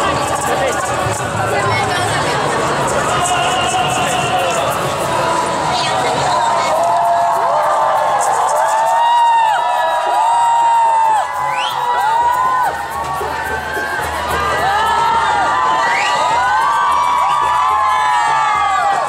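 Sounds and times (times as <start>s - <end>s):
crowd cheering and shouting: 0.0s - 19.0s
steady crowd din: 0.0s - 19.0s.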